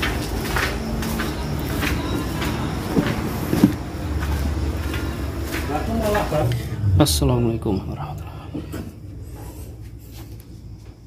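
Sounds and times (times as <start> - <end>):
footsteps on concrete floor: 0.0 - 6.8, 8.6 - 11.0
steady low rumble: 0.1 - 10.7.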